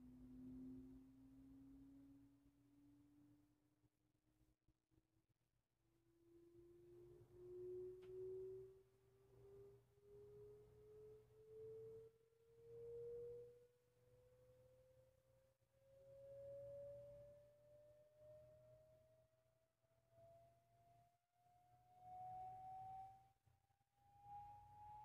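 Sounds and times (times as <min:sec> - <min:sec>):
rising sine tone through speaker: 0:00.0 - 0:03.0, 0:06.4 - 0:14.9, 0:15.8 - 0:19.1, 0:20.1 - 0:25.0.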